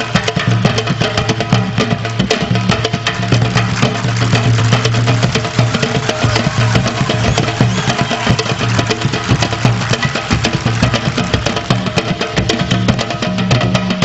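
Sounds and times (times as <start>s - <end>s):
hand drums playing: 0.0s - 14.0s
violin: 2.8s - 13.2s.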